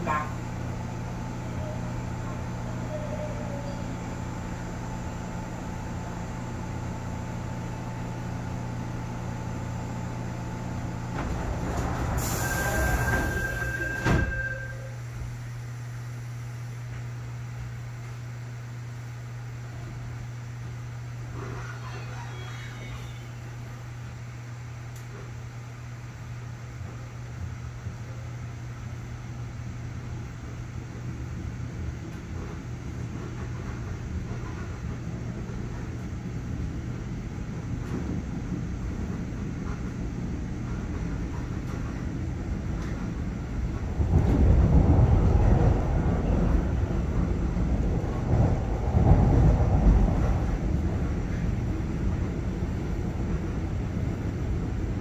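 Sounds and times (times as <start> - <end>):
train electrical hum: 0.0 - 55.0
door closing beep: 12.2 - 15.0.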